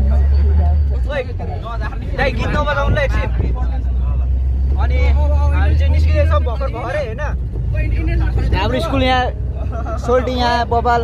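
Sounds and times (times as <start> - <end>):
people's voices: 0.0 - 11.0
vehicle engine and road noise: 0.0 - 11.0.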